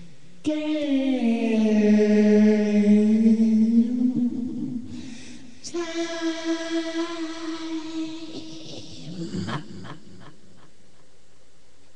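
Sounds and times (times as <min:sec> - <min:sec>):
low wavering rough voice: 0:05.7 - 0:10.0.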